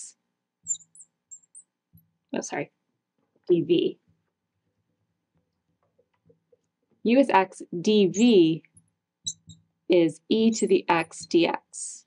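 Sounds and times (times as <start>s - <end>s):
marker squeaking on glass: 0.6s - 1.7s, 9.2s - 9.7s, 10.6s - 11.4s.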